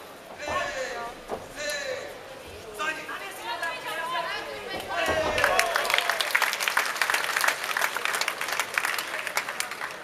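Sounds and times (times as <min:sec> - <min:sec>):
crowd shouting and chattering: 0:00.0 - 0:10.0.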